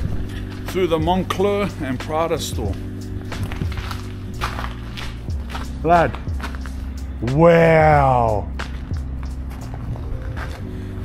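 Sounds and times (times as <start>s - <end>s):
background music with low bass: 0.0s - 11.0s
footsteps on slushy pavement: 2.8s - 7.0s.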